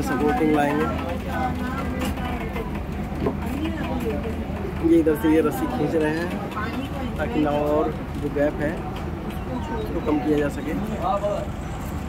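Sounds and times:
boat engine running: 0.0 - 12.0
faint voices: 0.0 - 12.0.

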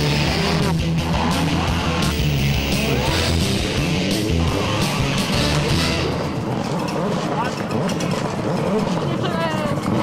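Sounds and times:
rally car engine running hard: 0.0 - 10.0.

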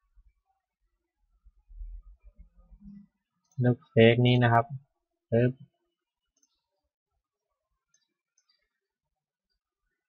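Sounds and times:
man speaking a syllable: 3.6 - 4.8, 5.4 - 5.6.

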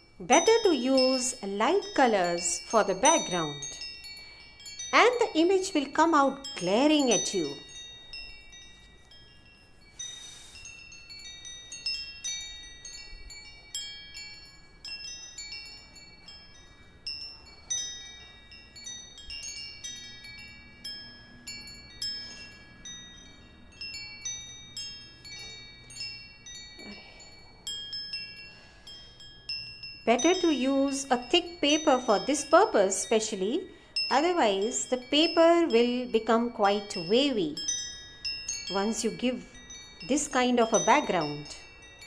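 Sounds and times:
wind chimes ringing: 0.0 - 42.0.

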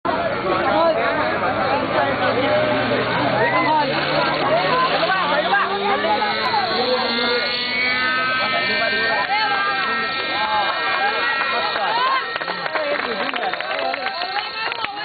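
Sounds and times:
loud crowd chatter: 0.0 - 15.0
model helicopter engine spooling up: 2.6 - 15.0.

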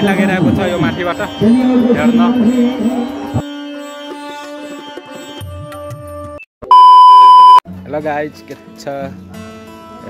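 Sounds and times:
electronic beep: 6.7 - 7.6.

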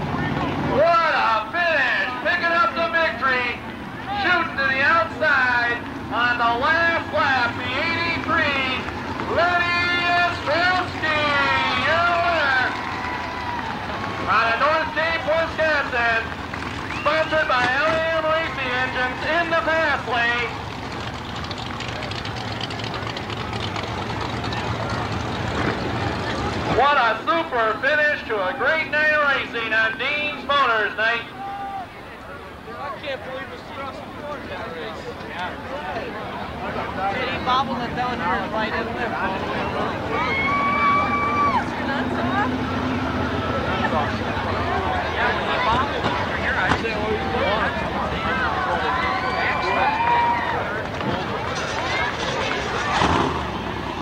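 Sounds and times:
race car engines droning: 0.0 - 54.0.

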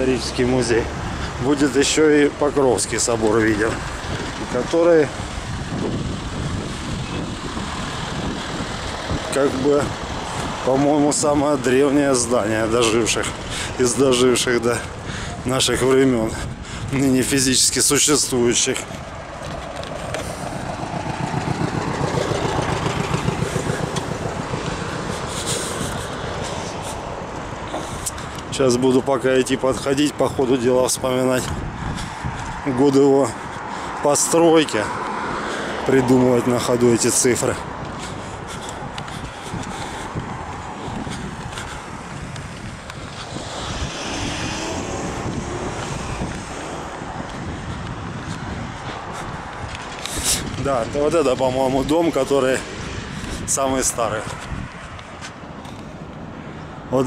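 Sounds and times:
wind on microphone: 2.8 - 56.9
car passing close by: 19.1 - 27.7, 33.5 - 38.5, 39.6 - 56.9.

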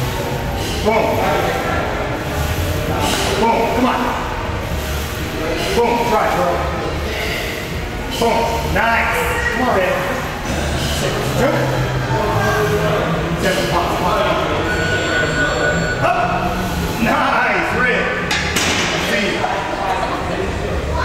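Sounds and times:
indistinct voices: 0.0 - 21.0.

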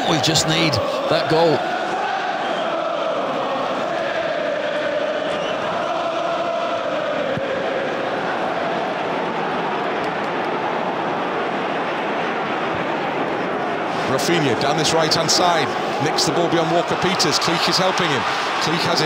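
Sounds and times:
stadium crowd roar: 0.0 - 19.0.

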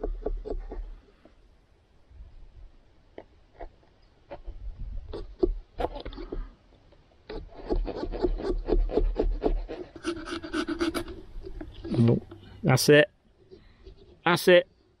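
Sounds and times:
saw rasping through pumpkin: 7.3 - 11.3.

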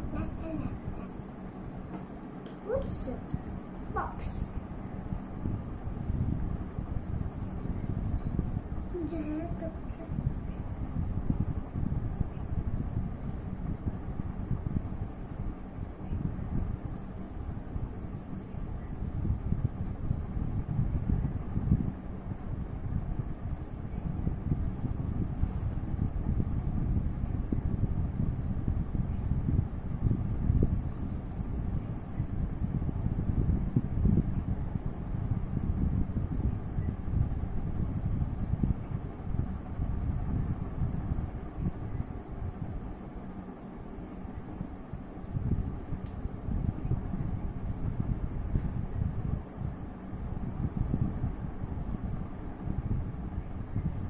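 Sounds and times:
wind buffeting microphone: 0.0 - 54.0.

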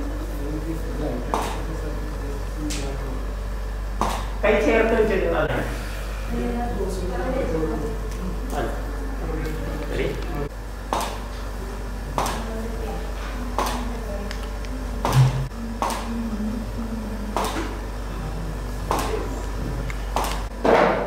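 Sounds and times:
low electrical hum: 0.0 - 21.0.

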